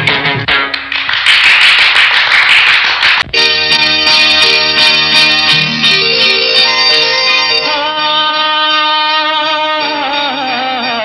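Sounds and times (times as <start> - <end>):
audience applause: 0.8 - 3.3
instrumental music notes: 3.3 - 11.0.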